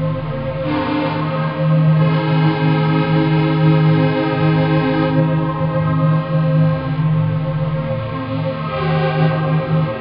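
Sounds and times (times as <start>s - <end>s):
dark ambient music: 0.0s - 10.0s.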